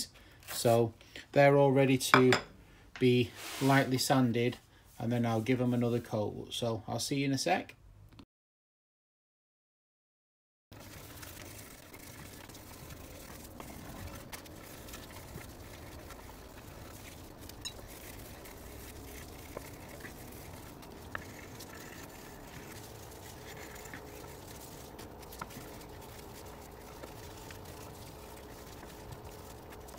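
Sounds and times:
sanding wood by hand: 10.8s - 29.9s.

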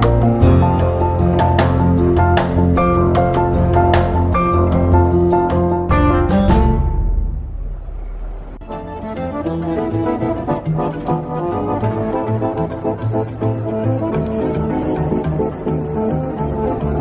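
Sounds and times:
double bass: 0.0s - 17.0s
piano: 0.0s - 17.0s.

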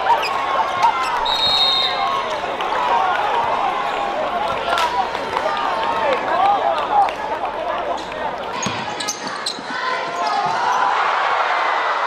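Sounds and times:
crowd calling and shouting: 0.0s - 12.0s.

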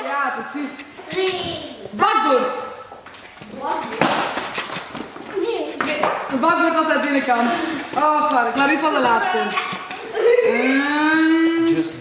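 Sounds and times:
shoes scuffing on concrete: 2.9s - 6.4s.

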